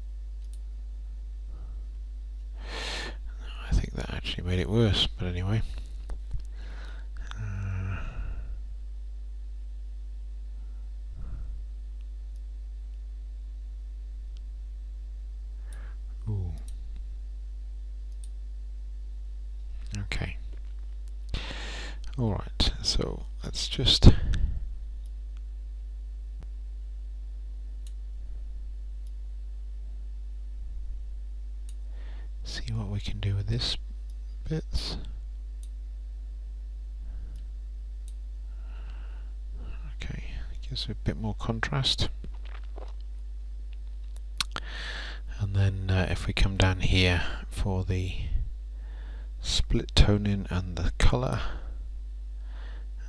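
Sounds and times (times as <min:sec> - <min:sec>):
low electrical hum: 0:00.0 - 0:53.0
person sighing: 0:06.6 - 0:08.6.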